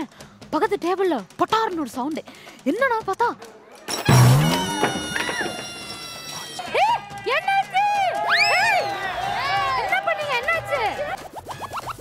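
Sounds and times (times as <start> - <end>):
held tone: 4.0 - 6.6.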